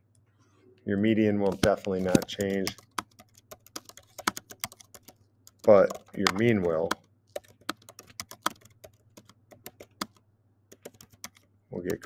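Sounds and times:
keyboard typing clicks: 1.5 - 12.0.

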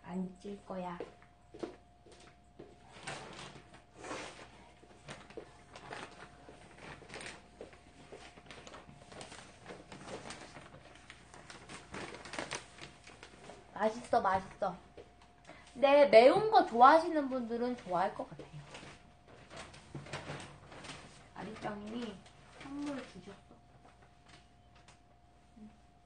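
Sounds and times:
faint steady hum: 0.0 - 26.0.

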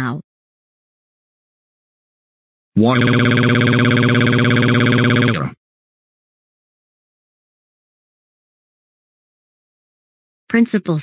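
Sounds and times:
synthesized voice wailing: 2.8 - 5.6.

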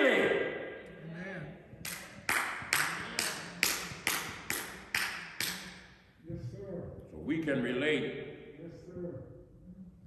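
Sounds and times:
sharp percussive taps: 1.9 - 5.9.

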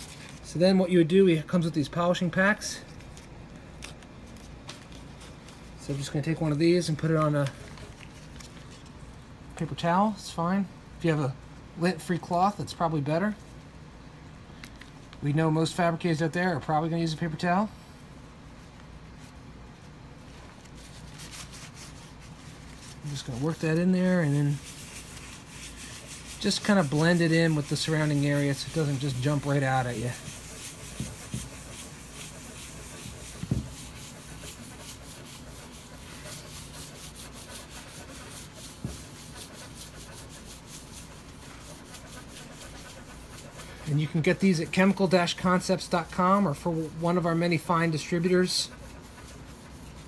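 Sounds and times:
paper towel rustling and crinkling: 0.0 - 0.8, 1.5 - 9.0, 18.6 - 50.0
cloth scrubbing on stone: 20.6 - 50.0.

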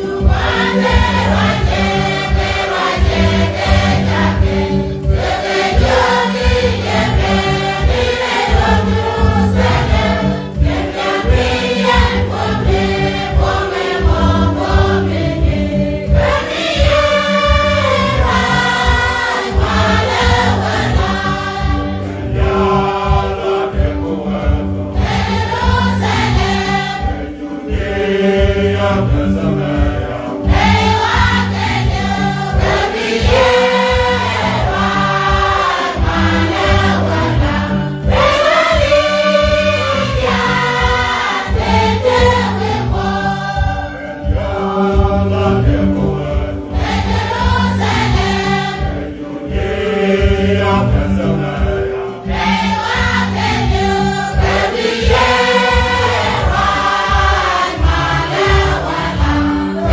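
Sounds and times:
choir singing a hymn: 0.0 - 59.9.

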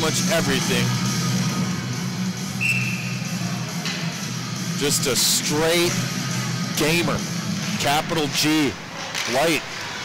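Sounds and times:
music with low drone: 0.0 - 9.1
referee's whistle: 2.6 - 3.3.

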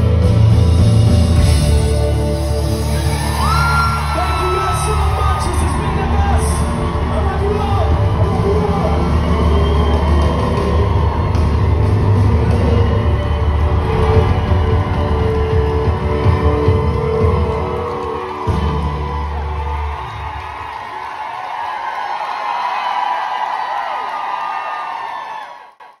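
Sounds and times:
audience cheering and whooping: 2.4 - 26.0.

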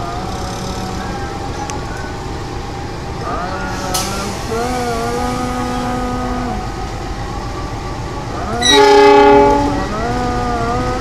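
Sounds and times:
diesel locomotive running: 0.0 - 11.0
locomotive horn blast: 8.5 - 10.2.

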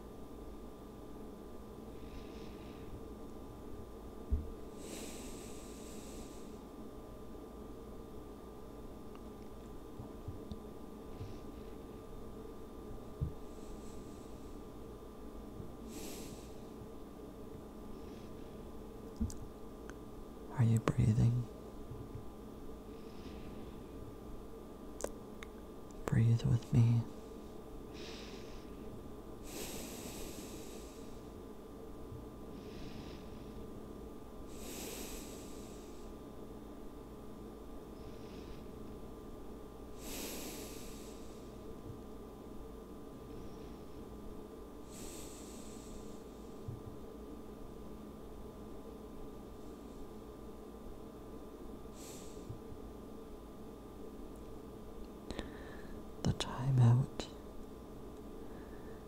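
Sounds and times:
faint background hum: 0.0 - 59.0
close breath: 1.9 - 3.1, 4.7 - 6.6, 13.2 - 14.7, 15.9 - 16.8, 22.9 - 23.9, 27.9 - 31.4, 32.5 - 33.6, 34.5 - 36.2, 38.0 - 38.8, 40.0 - 41.6, 44.8 - 46.6, 51.9 - 52.6, 55.3 - 56.1, 58.4 - 59.0
person whispering: 20.5 - 21.5, 26.0 - 27.2, 56.3 - 57.4.

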